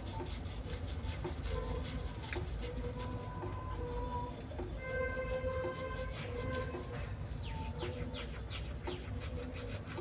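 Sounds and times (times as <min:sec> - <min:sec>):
toothbrush scrubbing wetly: 0:00.0 - 0:10.0.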